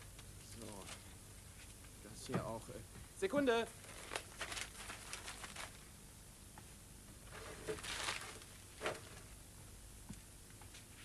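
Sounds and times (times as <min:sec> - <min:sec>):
rustling and handling items: 0:00.4 - 0:01.9, 0:03.8 - 0:05.9, 0:07.2 - 0:09.4.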